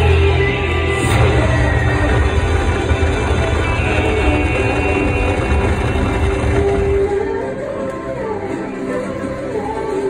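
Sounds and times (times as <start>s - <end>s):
slot machine music: 1.0s - 7.6s.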